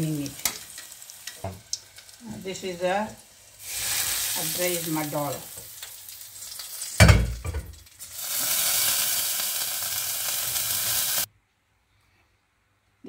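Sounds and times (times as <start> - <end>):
hot oil sizzling: 0.0 - 11.3.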